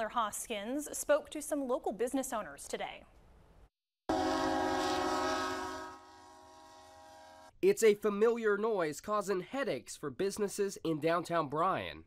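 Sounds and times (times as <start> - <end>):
locomotive horn chord: 4.1 - 7.6.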